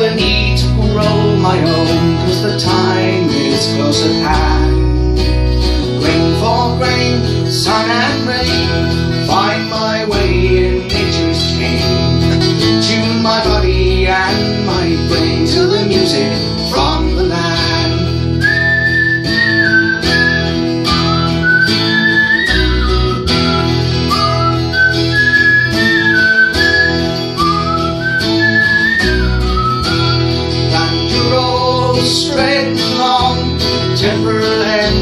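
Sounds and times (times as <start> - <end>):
acoustic guitar strumming: 0.0 - 35.0
man whistling melody: 6.8 - 9.8, 17.6 - 31.9.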